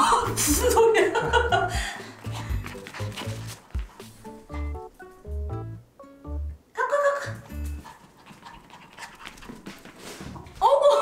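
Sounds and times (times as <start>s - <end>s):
small dog panting: 2.2s - 4.8s, 7.3s - 10.4s.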